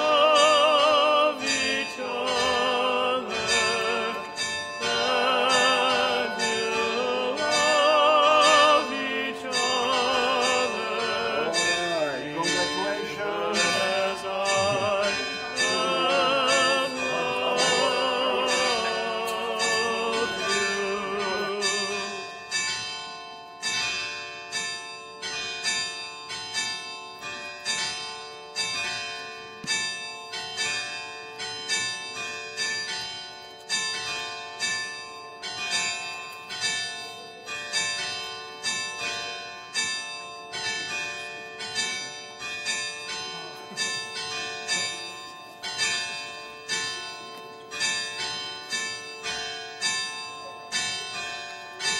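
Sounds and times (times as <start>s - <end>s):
people singing a hymn: 0.0s - 22.3s
church bells ringing: 0.0s - 51.9s.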